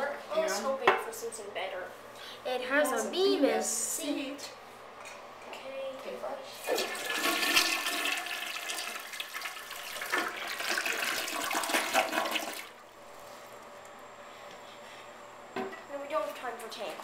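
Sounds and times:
toilet flushing: 6.6 - 12.8.

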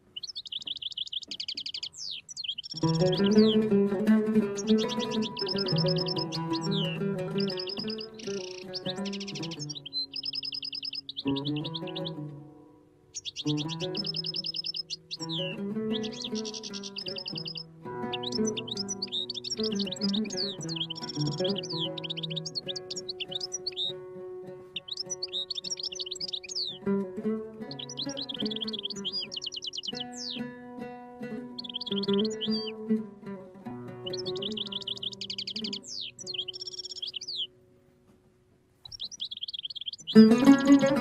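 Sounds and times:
songbird chirping and trilling: 0.0 - 37.6, 38.8 - 41.0
oud improvisation: 0.0 - 38.9, 40.0 - 41.0.

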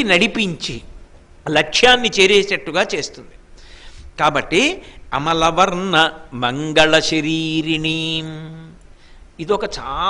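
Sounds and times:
man chanting: 4.2 - 8.8, 9.4 - 10.0.

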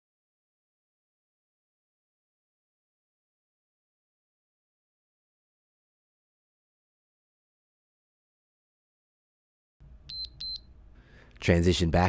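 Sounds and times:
short high electronic beeps: 10.1 - 10.6.

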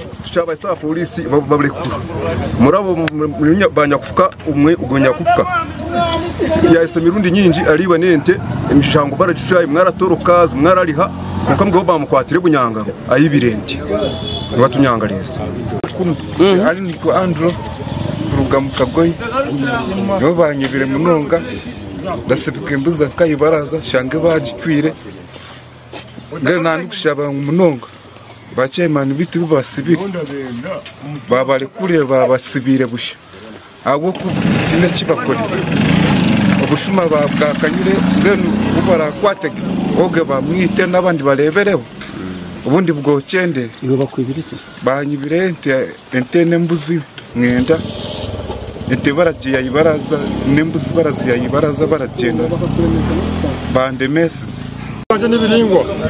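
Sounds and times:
man speaking loudly: 0.0 - 17.6, 18.3 - 25.0, 48.8 - 56.0
man talking: 0.0 - 17.7, 18.3 - 25.3, 26.2 - 48.1, 48.8 - 56.0
small engine puttering: 34.1 - 39.0.

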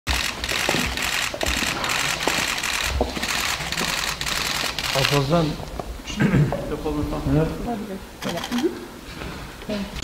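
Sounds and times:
camera shutters clicking: 0.1 - 5.2, 8.2 - 8.7.

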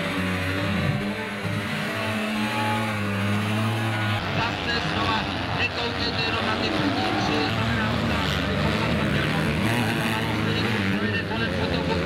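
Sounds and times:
motocross bike engines revving: 0.0 - 12.0.

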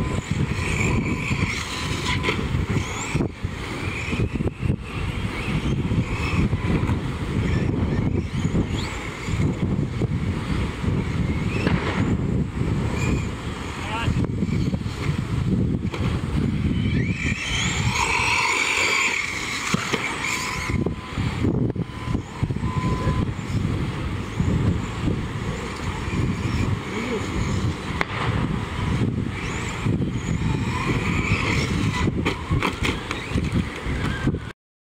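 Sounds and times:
rc truck motor whining: 0.0 - 34.5
wind rumble on microphone: 0.0 - 34.6.

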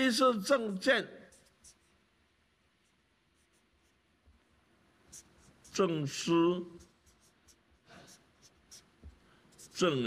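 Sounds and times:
marker scratching on paper: 1.3 - 10.0.

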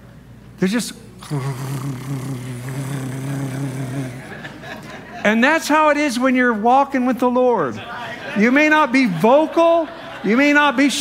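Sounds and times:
man imitating cat purr: 1.2 - 4.4.

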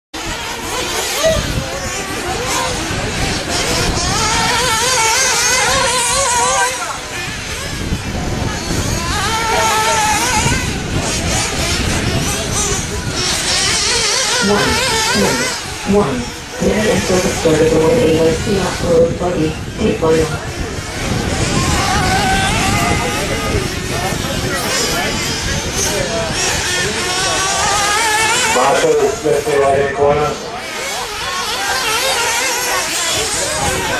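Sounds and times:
steady wash of noise: 0.2 - 30.8
rc car motors whining: 0.2 - 33.9.

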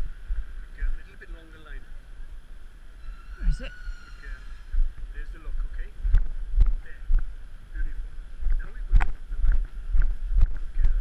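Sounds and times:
low rumble of body-worn microphone: 0.0 - 11.0
footsteps on brick paving: 6.0 - 7.3, 8.4 - 11.0.

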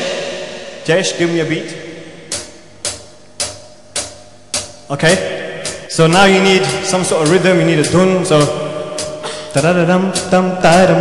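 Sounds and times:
percussive click beat: 0.0 - 11.0.

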